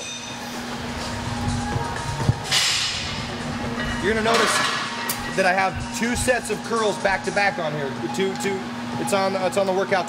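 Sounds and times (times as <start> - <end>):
background music: 0.0 - 10.0
steady hum: 0.0 - 10.0.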